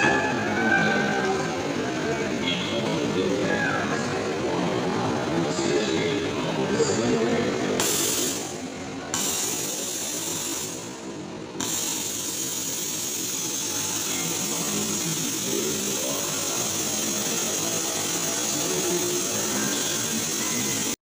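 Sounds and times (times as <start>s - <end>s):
plastic balls circulating mechanism: 11.6s - 21.0s.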